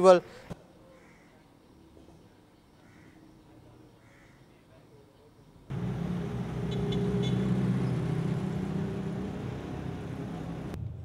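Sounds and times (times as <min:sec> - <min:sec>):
road traffic: 0:05.5 - 0:11.0
vehicle engine running close: 0:05.7 - 0:11.0.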